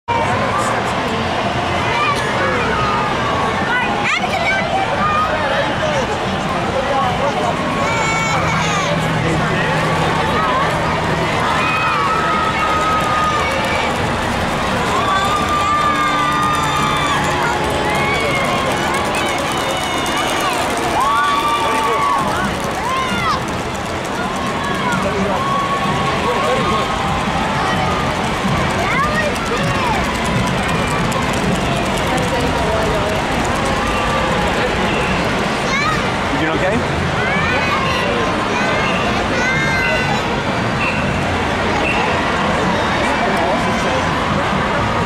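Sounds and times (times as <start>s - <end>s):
crowd hubbub: 0.0s - 45.0s.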